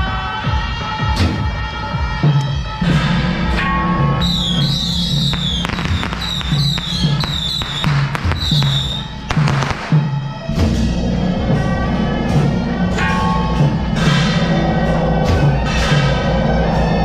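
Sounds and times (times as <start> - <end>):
steady drumbeat: 4.2 - 11.1.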